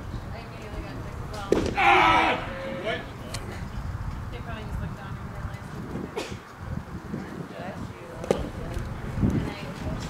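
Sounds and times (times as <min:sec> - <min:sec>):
baseball smacking into mitt: 0:01.5 - 0:01.8
umpire shouting: 0:01.8 - 0:03.2.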